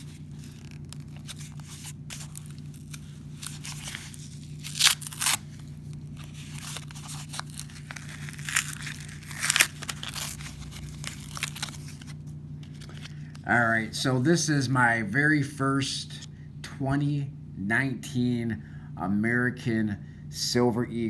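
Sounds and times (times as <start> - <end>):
package tearing open: 0.0 - 13.2
packaging rustling: 0.0 - 13.3.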